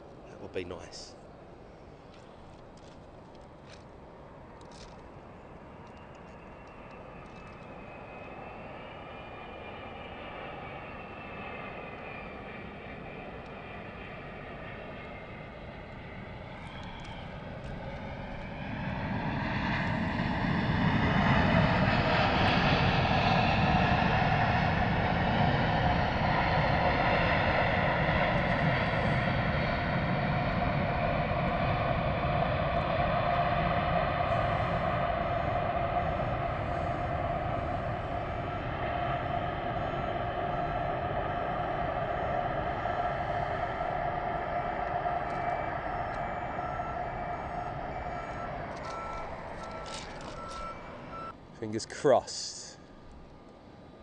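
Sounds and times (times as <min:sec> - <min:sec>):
jet engines roaring and whining: 0:00.0 - 0:54.0.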